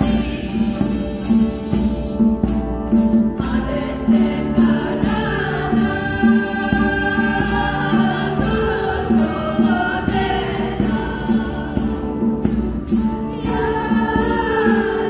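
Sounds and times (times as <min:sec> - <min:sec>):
women singing folk song in harmony: 0:00.0 - 0:15.0.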